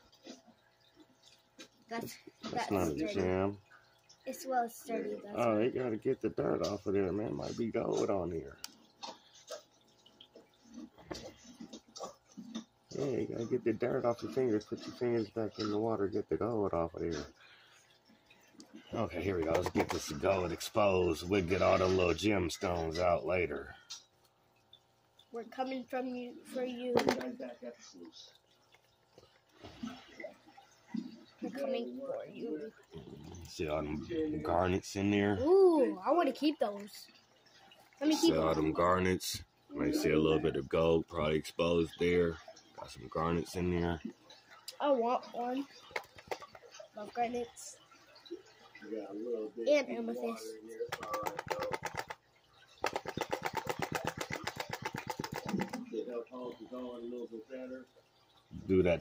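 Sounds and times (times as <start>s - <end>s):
water swishing in plastic pan: 50.6s - 56.7s.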